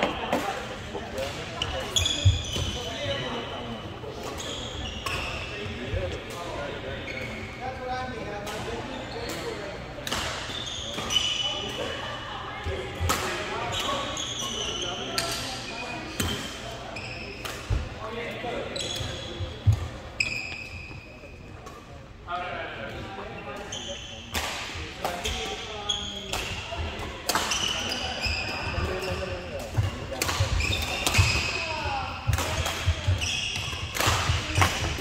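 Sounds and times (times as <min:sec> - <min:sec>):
players' voices: 0:00.0 - 0:35.0
racket hitting shuttlecock: 0:29.6 - 0:31.6, 0:32.2 - 0:35.0.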